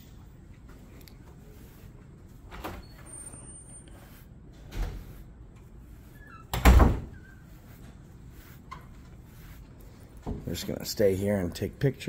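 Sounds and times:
doors opening and swinging shut: 2.4 - 3.4, 4.4 - 5.2, 6.2 - 7.3.

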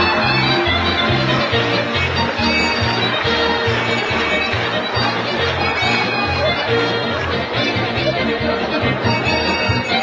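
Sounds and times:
upbeat music with bass line: 0.0 - 10.0.

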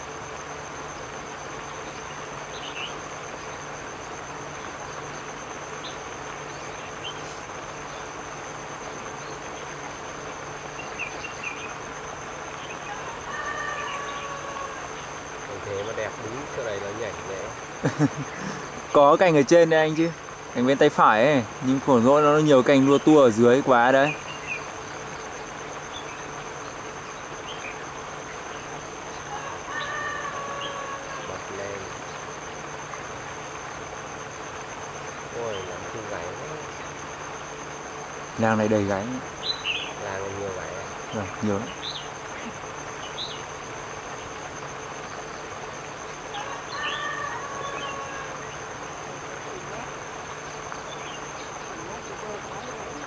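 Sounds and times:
high-pitched insect buzzing: 0.0 - 53.0
faint bird chirps: 1.7 - 3.6, 10.7 - 32.3, 38.4 - 44.4, 45.1 - 53.0.

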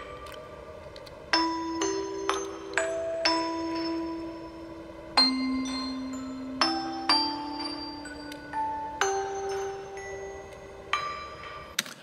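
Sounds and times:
music box melody: 0.0 - 11.8.

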